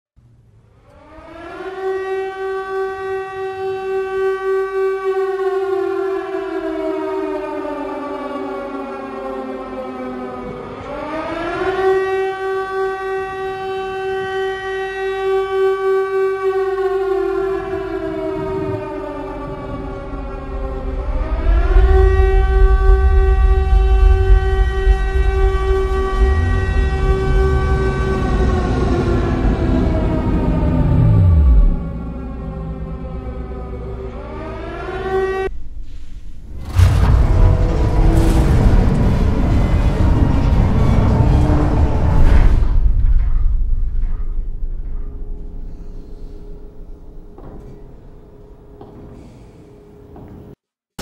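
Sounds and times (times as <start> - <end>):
air-raid siren wailing: 0.6 - 49.0
low rumble: 18.2 - 34.8, 35.4 - 48.4.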